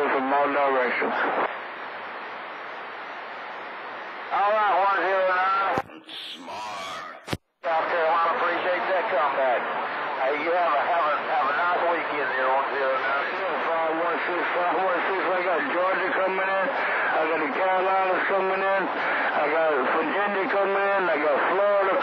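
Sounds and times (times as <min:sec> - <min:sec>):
garbled radio voices: 0:04.4 - 0:09.4.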